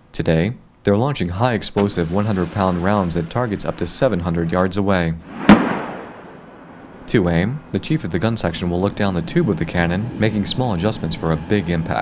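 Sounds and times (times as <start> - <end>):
artillery blast crack: 1.8 - 7.0
rolling echo: 1.8 - 11.6.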